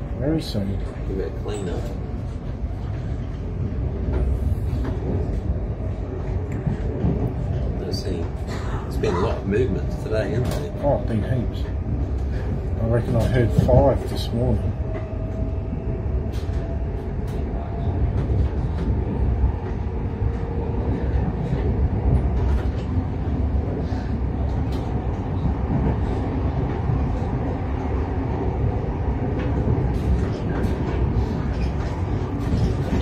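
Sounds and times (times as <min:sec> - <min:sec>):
freight train wheels rumbling: 0:00.0 - 0:33.0.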